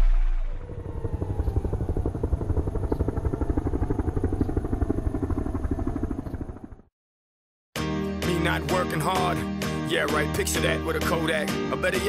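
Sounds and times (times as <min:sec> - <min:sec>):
engine-like mechanical throbbing: 0:00.0 - 0:06.8.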